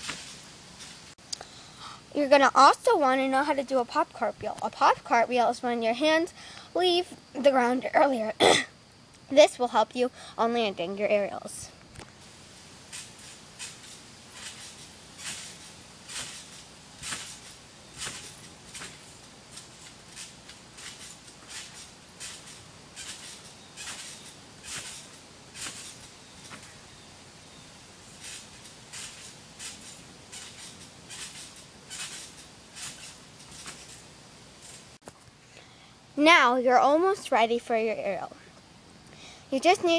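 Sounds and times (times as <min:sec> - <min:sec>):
trampoline springs creaking: 0:00.0 - 0:35.6.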